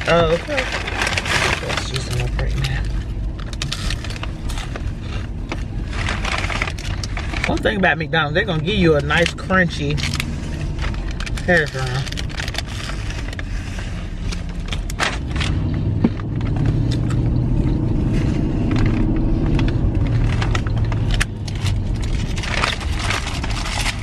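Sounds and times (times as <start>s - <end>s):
car cabin engine and road rumble: 0.0s - 24.0s
paper wrapper crinkling: 0.0s - 24.0s.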